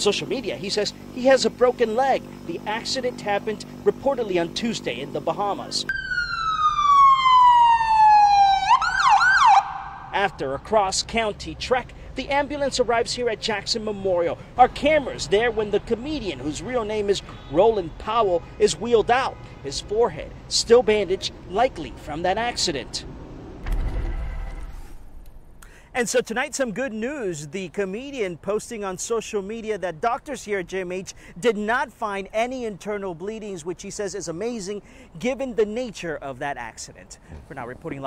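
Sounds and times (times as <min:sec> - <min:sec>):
ambulance siren wailing: 0:05.9 - 0:10.2.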